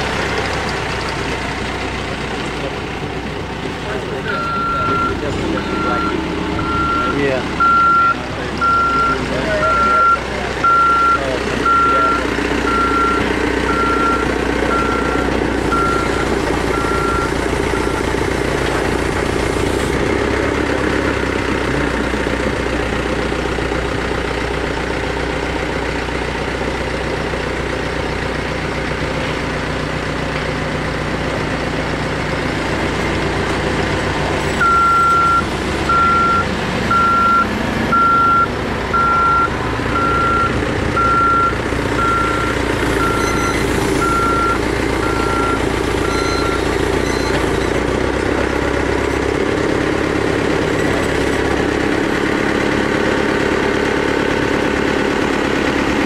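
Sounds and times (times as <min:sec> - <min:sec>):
diesel engine running: 0:00.0 - 0:56.0
reversing alarm beeping: 0:04.3 - 0:18.2, 0:34.6 - 0:47.8.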